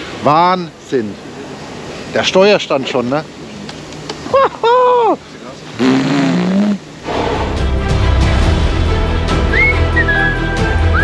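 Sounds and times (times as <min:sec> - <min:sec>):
man exclaiming: 0:04.4 - 0:05.2
background music: 0:07.0 - 0:11.0.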